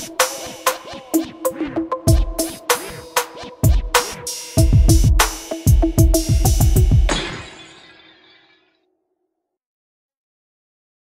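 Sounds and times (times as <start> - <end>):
glass bottle shattering: 7.1 - 8.8.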